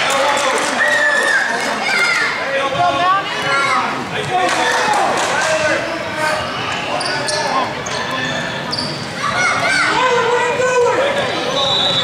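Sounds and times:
overlapping voices: 4.0s - 5.9s.

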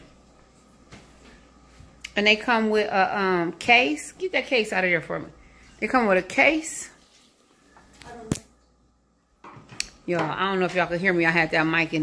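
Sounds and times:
soft rustling: 6.8s - 8.2s.

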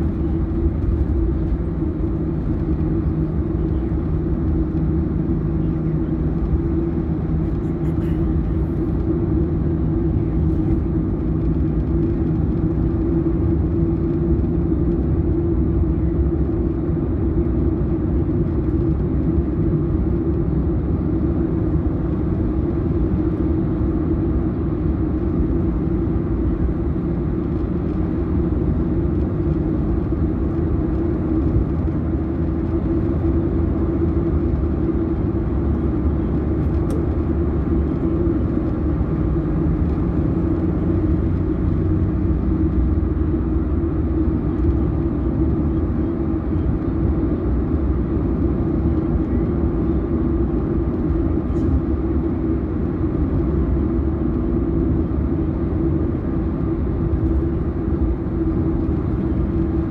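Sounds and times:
car engine and tyre rumble: 0.0s - 59.9s.

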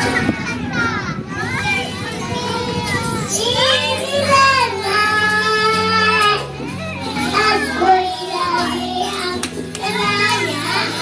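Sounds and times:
backing music: 0.0s - 11.0s
children talking and calling out: 0.0s - 11.0s.

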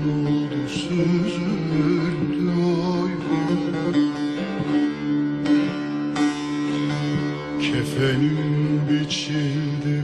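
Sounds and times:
long-necked lute folk melody: 0.0s - 10.0s.

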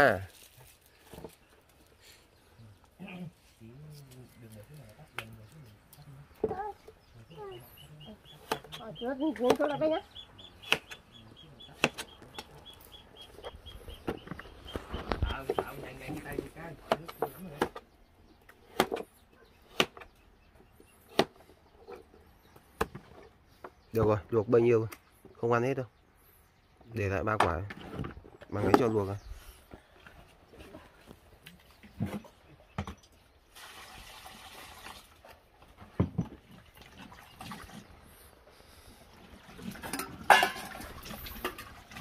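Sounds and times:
faint talk: 3.0s - 10.1s
chickens clucking: 6.3s - 17.6s.

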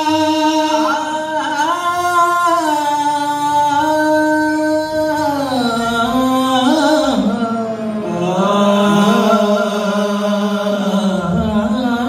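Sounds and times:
men singing a long note: 0.0s - 12.0s.

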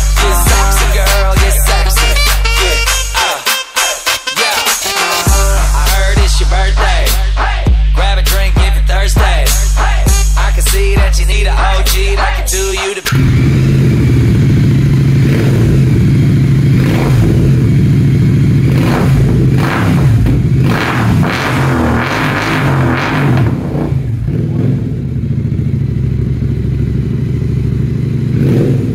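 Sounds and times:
motorcycle engine revving and idling: 0.0s - 3.2s, 5.2s - 28.9s.

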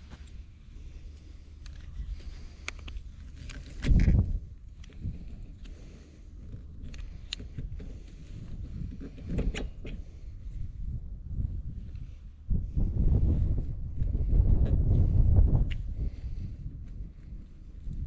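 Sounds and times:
wind rumble on microphone: 0.0s - 18.0s.

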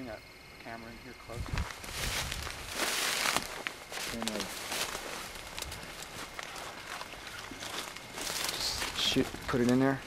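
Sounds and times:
dry brush rustling and crackling: 1.4s - 10.0s
twigs snapping: 1.5s - 9.8s.

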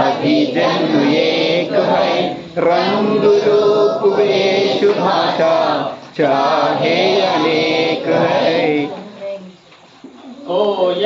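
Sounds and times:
group singing in unison: 0.0s - 9.1s.

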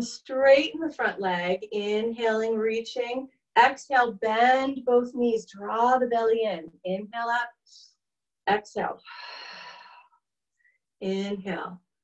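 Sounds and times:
person exhaling breath: 9.0s - 10.1s.

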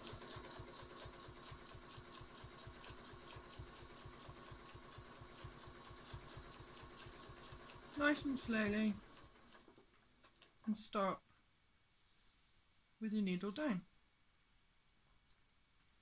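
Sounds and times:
sewing machine stitching: 0.0s - 10.5s.

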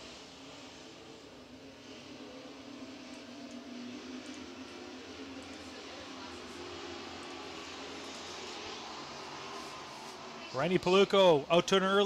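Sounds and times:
distant racing truck engines drone: 0.0s - 12.0s.

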